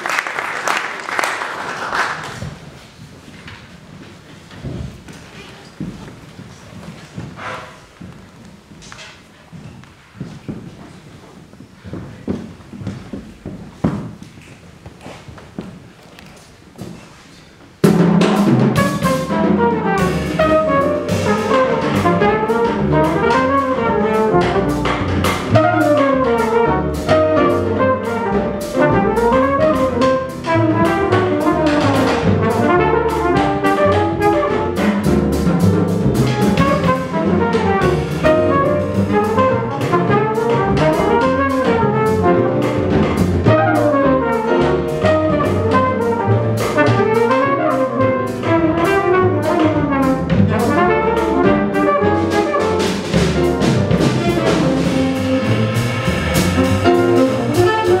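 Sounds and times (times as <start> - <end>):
piano: 0.0 - 58.0
drum kit: 16.8 - 58.0
trumpet: 17.8 - 58.0
upright bass: 18.2 - 58.0
saxophone: 54.0 - 58.0.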